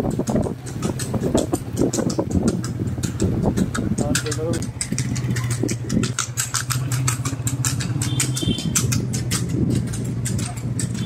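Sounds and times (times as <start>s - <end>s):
motorcycle engine running: 0.0s - 11.0s
rapid clattering knocks: 0.0s - 11.0s.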